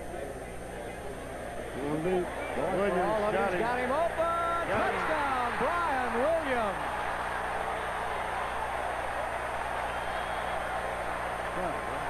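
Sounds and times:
stadium crowd cheering: 1.6 - 12.0
commentator speaking excitedly: 2.8 - 6.8.

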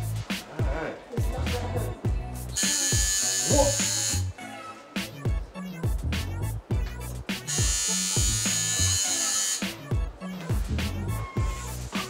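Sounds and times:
music with steady beat: 0.0 - 12.0
electric razor buzzing: 2.6 - 4.4, 7.5 - 9.9.

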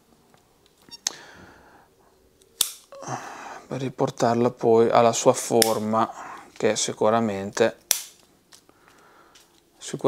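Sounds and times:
scissors snapping shut: 2.5 - 3.0, 7.8 - 8.6.

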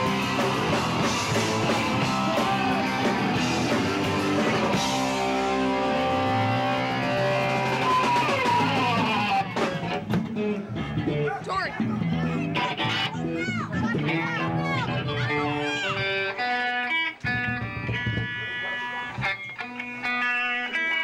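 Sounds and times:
young voices shouting: 0.0 - 16.6
rock band playing live: 0.0 - 21.0
scattered guitar notes: 0.0 - 21.0.

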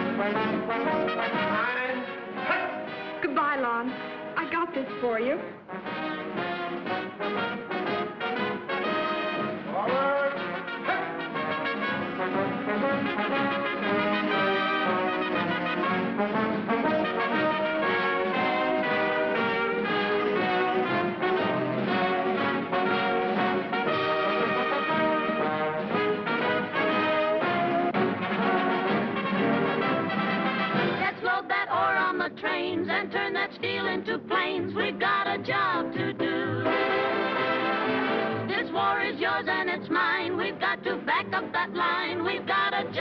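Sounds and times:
brass band music: 0.0 - 32.1, 35.8 - 40.7.

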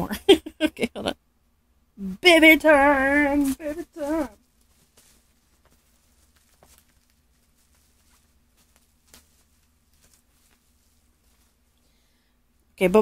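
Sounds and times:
faint steady hum: 0.0 - 13.0
bubble wrap crinkling: 2.7 - 12.1.

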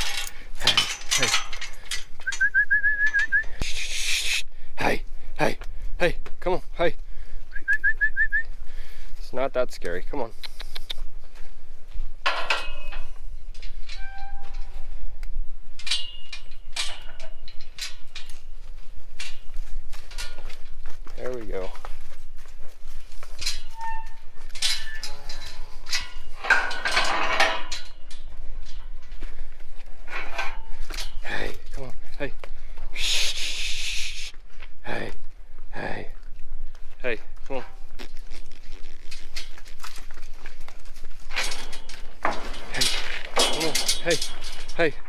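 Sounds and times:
metallic knocks and clanks: 0.0 - 3.5, 12.2 - 14.8, 15.8 - 18.6, 19.2 - 20.8, 23.3 - 31.8, 41.1 - 45.0.

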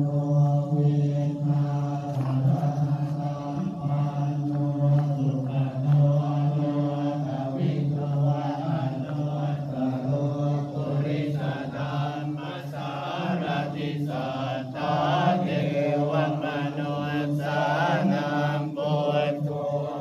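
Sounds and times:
voices chanting in monotone: 0.0 - 20.0.

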